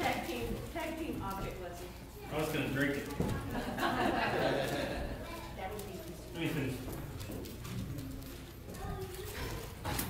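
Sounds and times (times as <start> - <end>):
low voices murmuring: 0.0 - 10.0.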